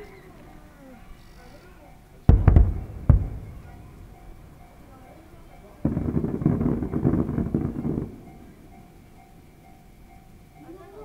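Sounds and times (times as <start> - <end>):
fireworks bangs and crackles: 2.2 - 8.7.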